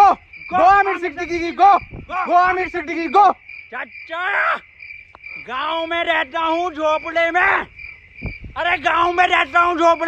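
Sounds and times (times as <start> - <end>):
crickets trilling: 0.0 - 10.0
low thumps: 8.1 - 8.6.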